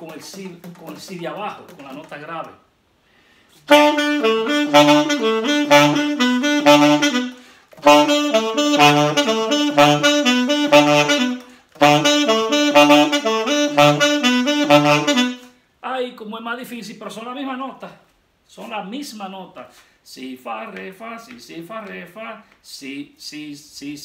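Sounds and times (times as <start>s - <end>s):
man's voice: 0.0s - 2.6s, 18.6s - 24.0s
alto saxophone playing: 3.6s - 15.6s.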